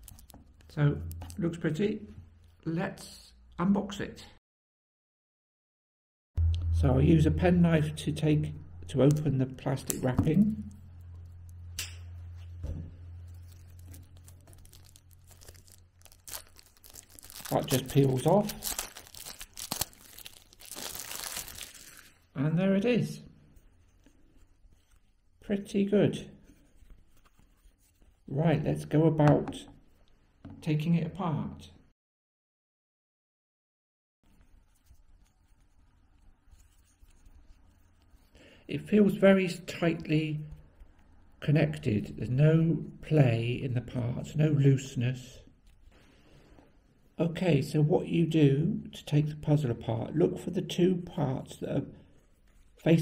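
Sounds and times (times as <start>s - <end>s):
plastic wrap crinkling: 0.0s - 1.4s, 10.6s - 22.3s
low steady hum: 6.4s - 21.7s.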